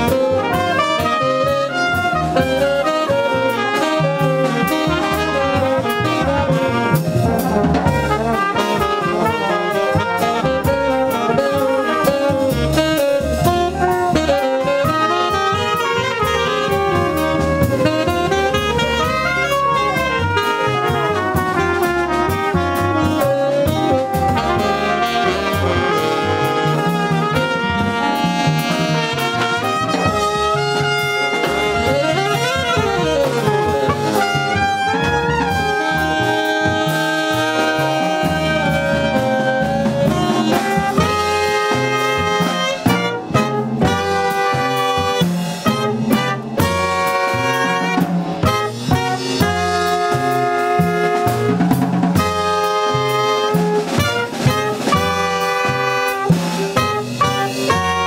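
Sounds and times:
double bass: 0:00.0 - 0:58.0
drums: 0:00.0 - 0:58.0
tenor saxophone: 0:00.0 - 0:58.0
trombone: 0:00.0 - 0:58.0
trumpet: 0:00.0 - 0:58.0.

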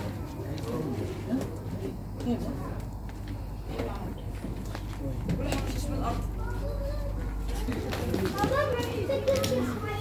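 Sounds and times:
steady low hum: 0:00.0 - 0:10.0
indistinct voices close by: 0:05.0 - 0:10.0.

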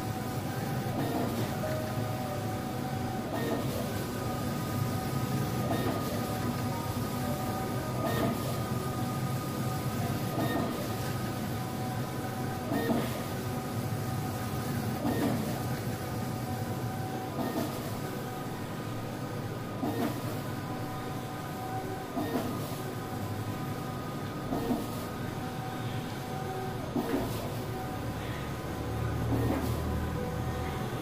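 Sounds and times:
large printer running: 0:00.0 - 0:31.0.

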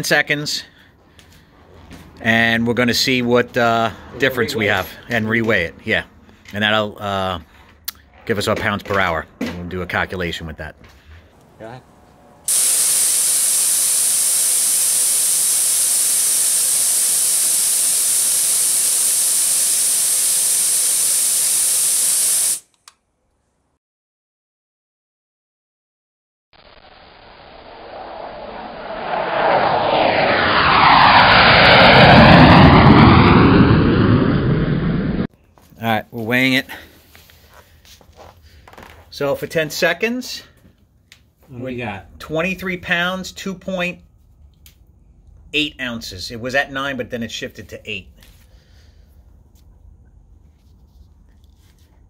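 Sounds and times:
footsteps on concrete floor: 0:01.0 - 0:02.2, 0:37.0 - 0:38.9
loud steady gas hiss: 0:12.5 - 0:22.7.

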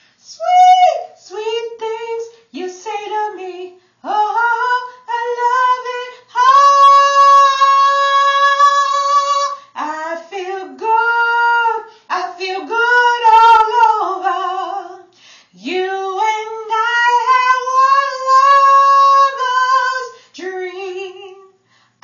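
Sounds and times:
singer breathing: 0:00.0 - 0:00.2, 0:15.1 - 0:15.6, 0:21.6 - 0:22.0
woman singing: 0:00.2 - 0:21.6.

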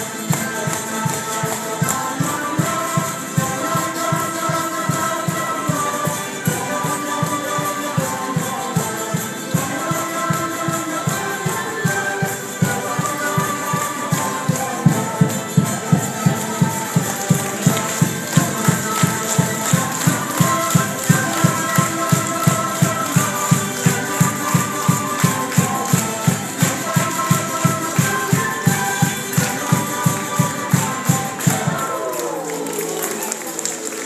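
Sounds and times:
drum beating steadily: 0:00.0 - 0:33.0
folk band music: 0:00.0 - 0:34.0
tambourine rattling: 0:00.0 - 0:34.0.

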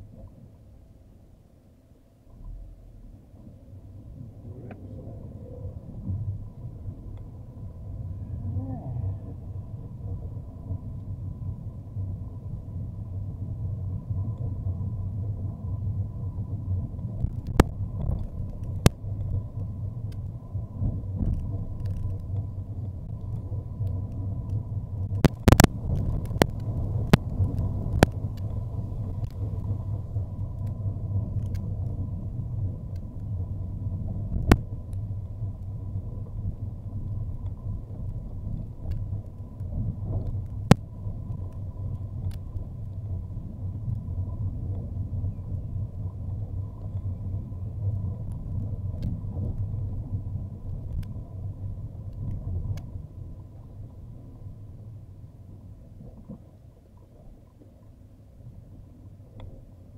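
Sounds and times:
car road noise rumble: 0:02.1 - 0:57.3.

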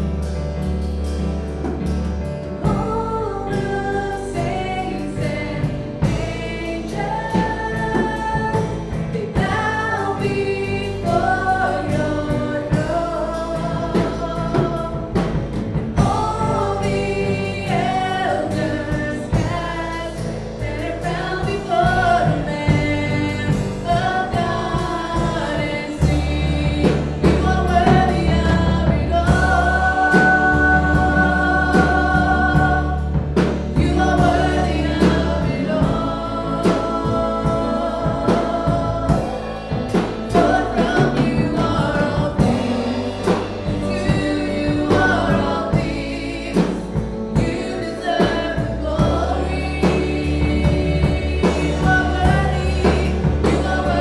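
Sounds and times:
drums: 0:00.0 - 0:54.0
keyboard: 0:00.0 - 0:54.0
low bass notes: 0:00.0 - 0:54.0
women singing in harmony: 0:02.5 - 0:54.0.

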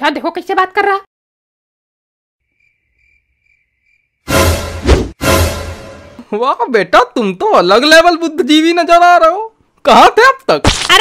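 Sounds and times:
faint cricket chirping: 0:02.4 - 0:04.2.

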